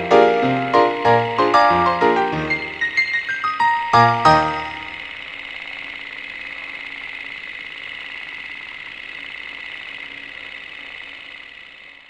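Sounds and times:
small machine rattling and whirring: 0.0 - 12.0.

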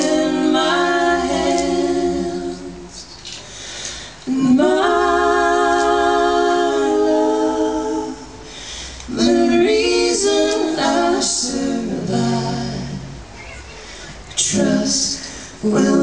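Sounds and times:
voices singing a cappella harmony: 0.0 - 13.3, 14.1 - 16.0.

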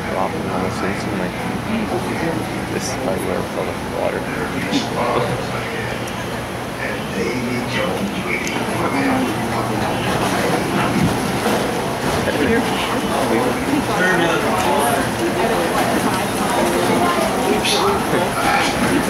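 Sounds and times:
indistinct voices talking: 0.0 - 19.0
steady low hum: 0.0 - 19.0.

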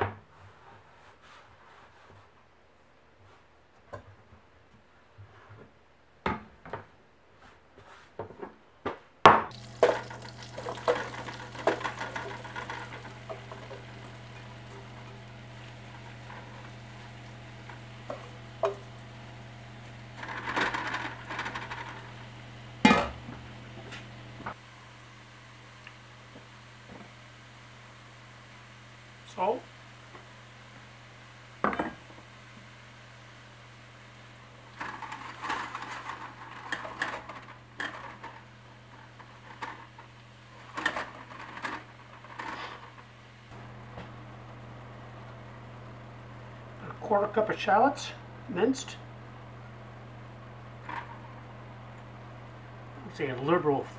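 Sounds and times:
mushrooms clinking into metal pot: 9.5 - 15.2
steady low hum: 9.5 - 53.9.

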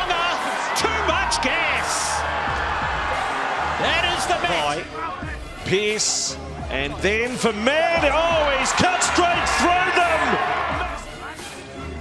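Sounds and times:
excited commentator's voice: 0.0 - 2.2, 3.7 - 11.1
faint background music: 0.0 - 12.0.

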